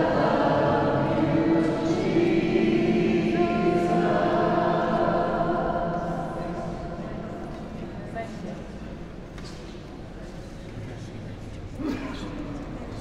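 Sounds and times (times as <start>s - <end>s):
group singing with echo: 0.0s - 8.0s.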